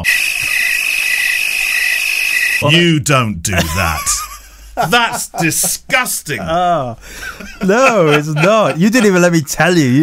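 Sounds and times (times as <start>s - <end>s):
cricket chirping: 0.0s - 2.6s.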